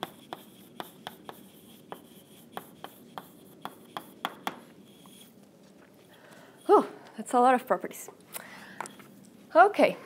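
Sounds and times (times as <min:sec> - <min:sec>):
chalk tapping on blackboard: 0:00.0 - 0:05.3
chalk scraping: 0:00.0 - 0:05.4.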